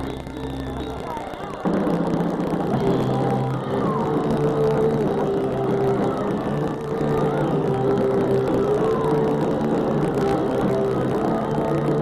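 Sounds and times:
bass guitar: 0.0s - 12.0s
distorted electric guitar: 0.0s - 12.0s.

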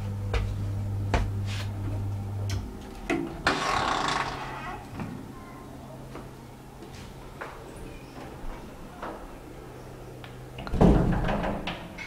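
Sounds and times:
elevator running hum: 0.0s - 12.0s
elevator doors sliding open: 2.6s - 4.9s.

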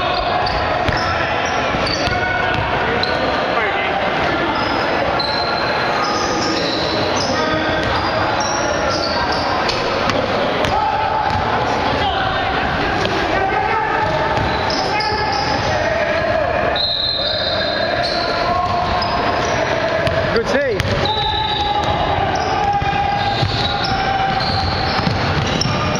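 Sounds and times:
players calling out: 0.0s - 25.9s.

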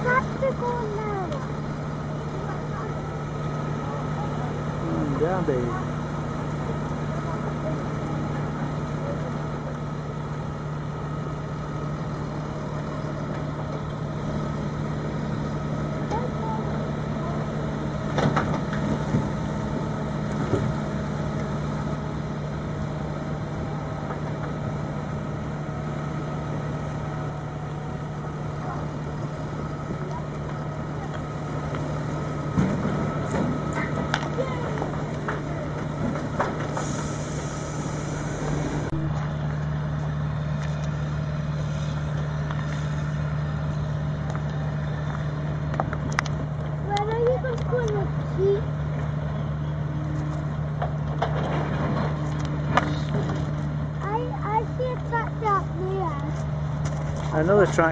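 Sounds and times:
diesel engines running: 0.0s - 57.9s.

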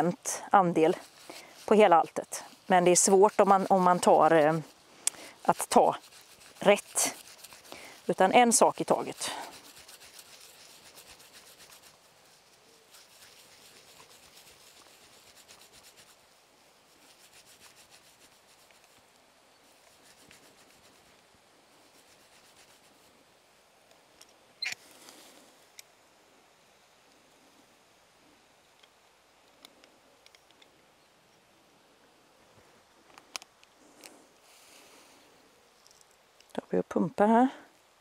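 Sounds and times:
grass rustling between palms: 0.0s - 26.1s.

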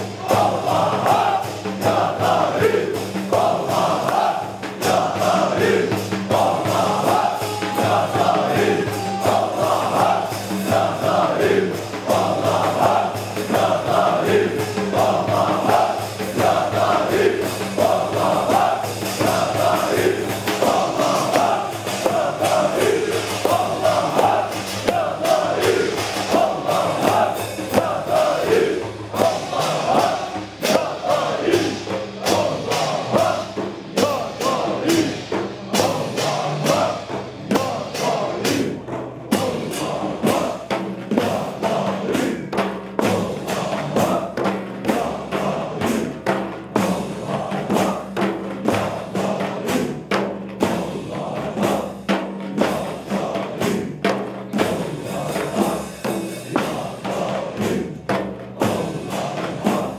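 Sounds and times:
frame drums beating: 0.0s - 59.9s
men chanting in unison: 0.0s - 59.9s.

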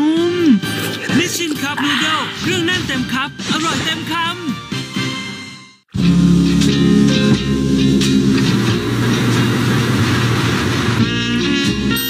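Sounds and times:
truck on test rig rumbling: 6.0s - 11.5s.

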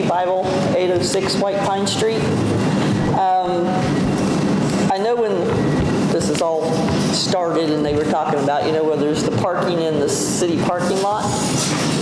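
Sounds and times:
person speaking: 0.0s - 4.0s, 4.8s - 11.5s
low hum: 0.0s - 7.4s
loud room noise hiss: 0.0s - 12.0s.

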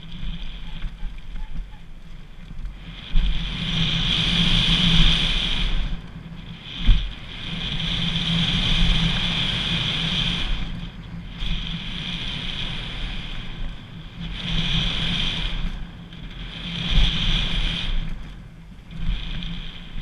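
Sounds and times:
bike tyres on dirt: 0.0s - 20.0s
wind on microphone: 0.0s - 20.0s.

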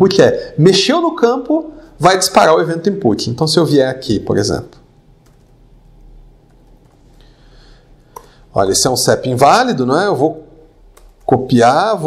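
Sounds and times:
laptop keyboard typing: 5.2s - 5.5s, 10.9s - 11.4s.

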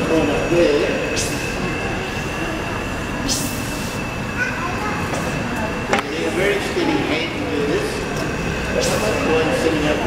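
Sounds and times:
steam pumping engine running: 0.0s - 10.0s.

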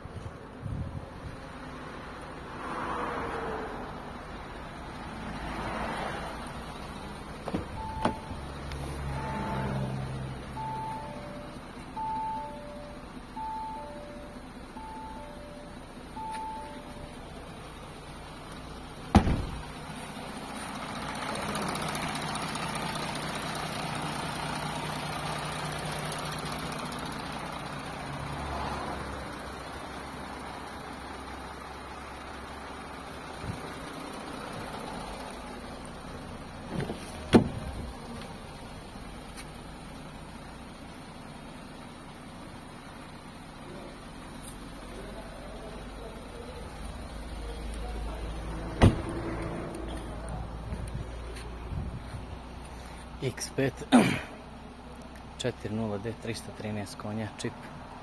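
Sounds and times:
car door warning chime: 7.5s - 8.6s, 10.6s - 17.2s.

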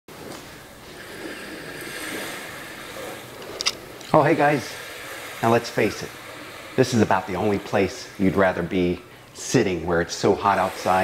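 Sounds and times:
ocean surf: 0.1s - 11.0s.

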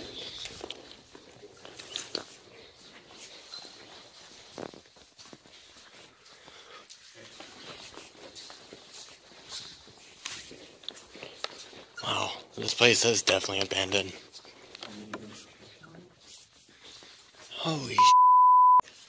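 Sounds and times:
footsteps on tiled floor: 0.0s - 12.0s
rustling: 0.0s - 17.6s.

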